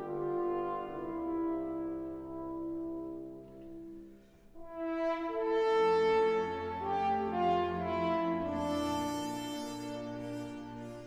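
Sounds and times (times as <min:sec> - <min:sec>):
french horns playing: 0:00.0 - 0:03.8, 0:04.6 - 0:11.0
orchestra low held notes: 0:00.0 - 0:11.0.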